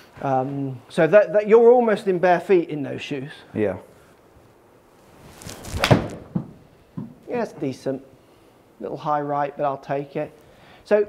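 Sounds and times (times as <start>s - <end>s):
golf club swishing: 5.0s - 6.4s
ball hitting screen: 5.7s - 7.2s
club striking ball with thunk: 5.8s - 7.2s.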